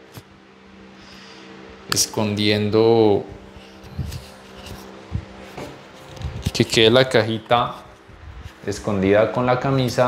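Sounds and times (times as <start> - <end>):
fabric rubbing against microphone: 3.4 - 9.0
microphone handling thump: 3.8 - 6.8.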